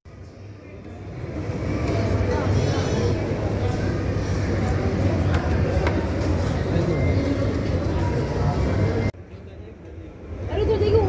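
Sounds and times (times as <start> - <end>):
faint chatter: 0.1 - 11.0.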